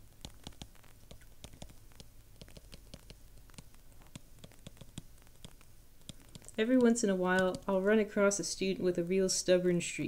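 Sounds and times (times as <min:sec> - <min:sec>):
stylus tapping on tablet screen: 0:00.2 - 0:07.9.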